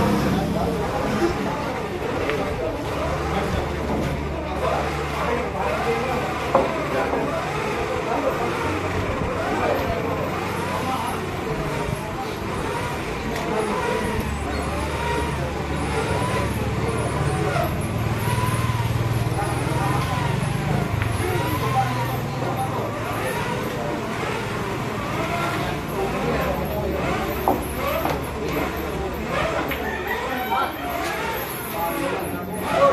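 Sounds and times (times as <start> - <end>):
vehicle engine running: 0.0 - 29.8.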